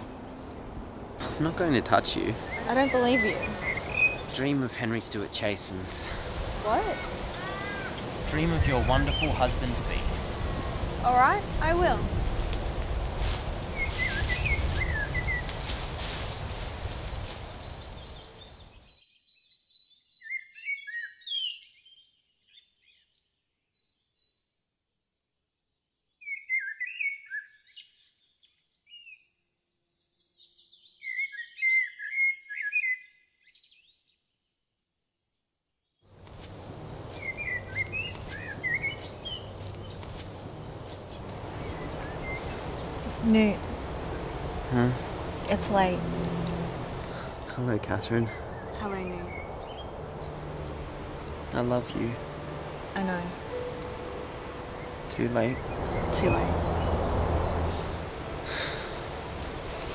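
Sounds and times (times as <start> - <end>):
steady outdoor hiss: 0.0 - 18.9, 36.1 - 59.9
birds chirping: 0.0 - 24.6, 36.1 - 59.9.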